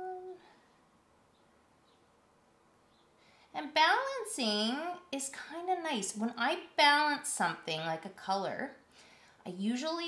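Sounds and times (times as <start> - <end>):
woman humming: 0.0 - 0.6.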